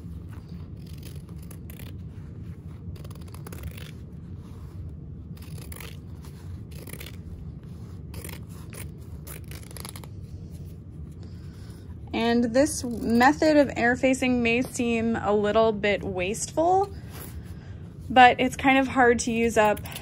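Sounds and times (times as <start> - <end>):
fabric shears snipping cloth: 0.1 - 4.3, 5.3 - 10.2.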